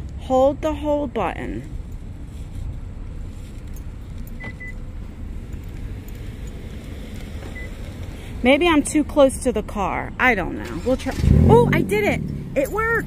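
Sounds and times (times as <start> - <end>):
low outdoor rumble: 0.0 - 13.0.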